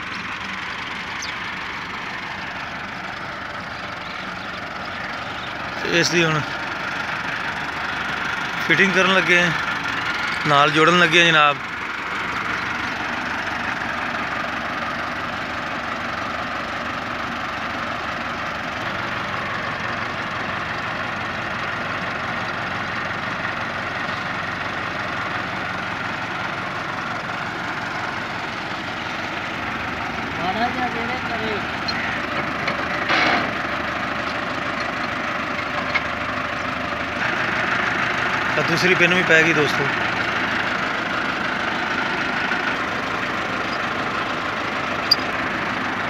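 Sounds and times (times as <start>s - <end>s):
tractor diesel engine idling: 0.0s - 46.0s.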